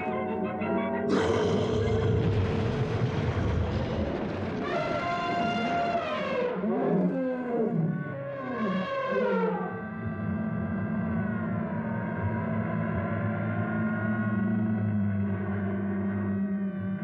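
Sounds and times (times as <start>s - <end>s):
long pitched animal call: 0.0s - 2.4s, 4.6s - 12.2s
animal roar: 1.1s - 9.8s.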